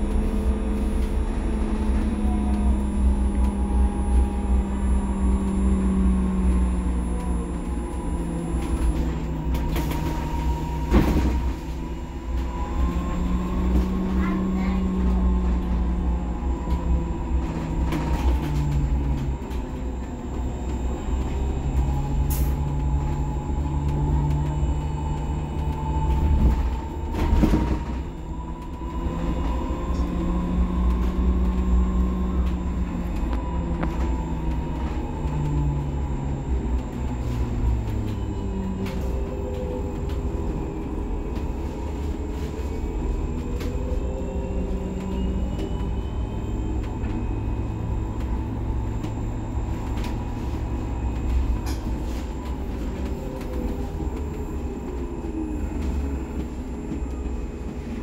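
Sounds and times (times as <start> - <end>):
electric bus drive whine: 0.0 - 58.0
low road rumble: 0.0 - 58.0.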